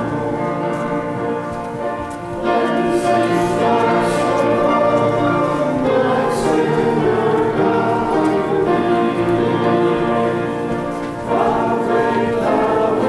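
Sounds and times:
choir singing slow chords: 0.0s - 13.0s.

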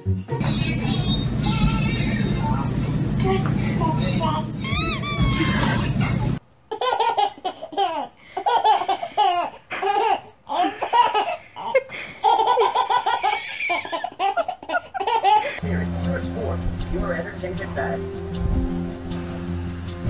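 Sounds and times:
background music: 0.0s - 0.5s, 15.6s - 20.0s
baby laughing: 4.3s - 5.9s, 6.7s - 15.6s
high squeal: 4.6s - 5.8s.

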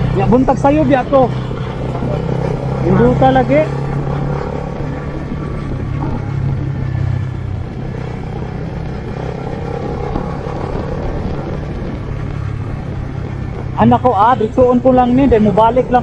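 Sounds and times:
road and wind noise: 0.0s - 16.0s
small motorcycle engine running: 0.0s - 16.0s.

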